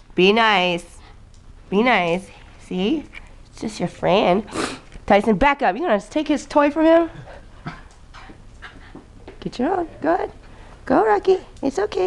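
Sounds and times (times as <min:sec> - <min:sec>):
dog panting: 0:06.9 - 0:09.2.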